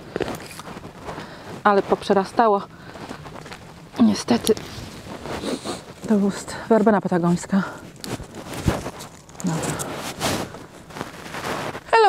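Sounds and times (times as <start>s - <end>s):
roots tearing from soil: 7.4s - 11.9s.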